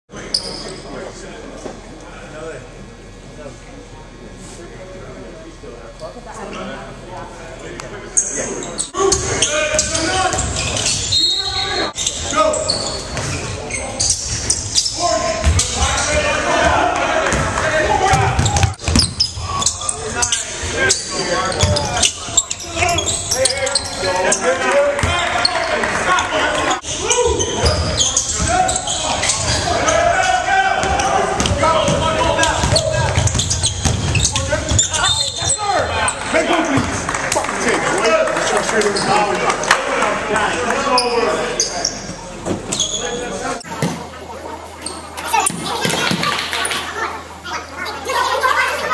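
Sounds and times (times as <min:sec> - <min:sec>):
players' voices and calls: 0:00.1 - 0:48.9
basketballs bouncing on hardwood: 0:32.6 - 0:34.8.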